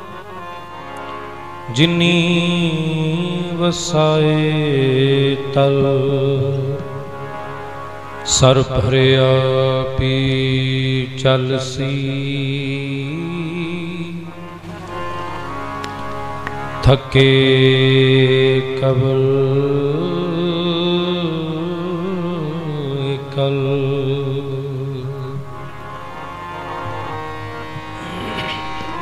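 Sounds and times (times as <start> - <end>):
harmonium drone: 0.0 - 29.0
musical accompaniment: 0.0 - 29.0
devotional singing held note: 1.7 - 29.0
person singing a long note: 26.8 - 29.0.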